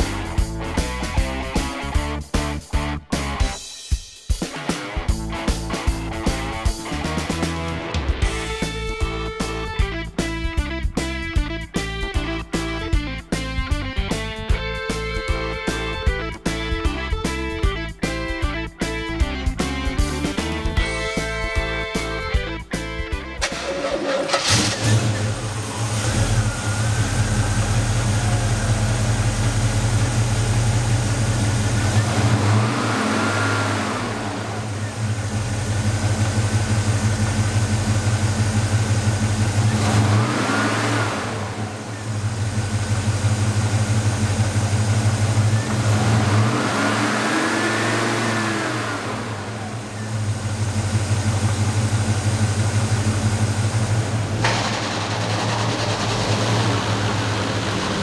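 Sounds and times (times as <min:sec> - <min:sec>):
car engine idling and revving: 0:00.0 - 0:03.6, 0:05.0 - 0:58.0.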